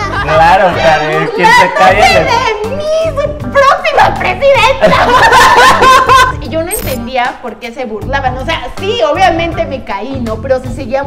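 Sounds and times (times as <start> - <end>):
background music: 0.0 - 11.0
people laughing and snickering: 4.8 - 6.4.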